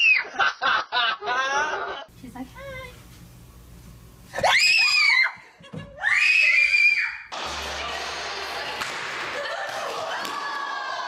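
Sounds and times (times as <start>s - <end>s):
girl screaming in fright: 4.4s - 5.4s, 6.0s - 7.3s
large hall noise: 4.4s - 11.0s.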